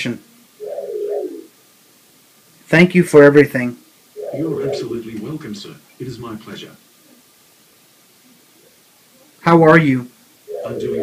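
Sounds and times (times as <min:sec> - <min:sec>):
wavering computer tone: 0:00.6 - 0:01.5, 0:04.2 - 0:05.2, 0:10.5 - 0:11.0.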